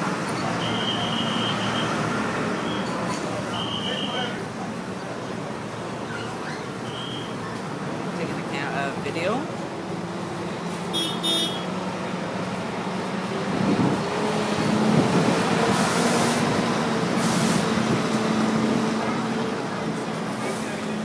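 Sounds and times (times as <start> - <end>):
heavy truck diesel engine passing: 0.0 - 21.0
short air hisses: 17.2 - 17.6.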